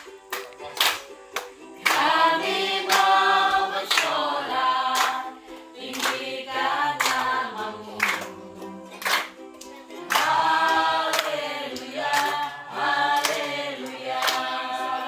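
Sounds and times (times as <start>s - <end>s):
people clapping in time: 0.0s - 15.0s
group singing unaccompanied: 0.8s - 15.0s.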